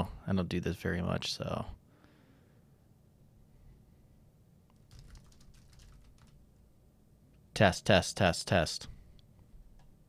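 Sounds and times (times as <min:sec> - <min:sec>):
computer keyboard typing: 0:04.7 - 0:06.4.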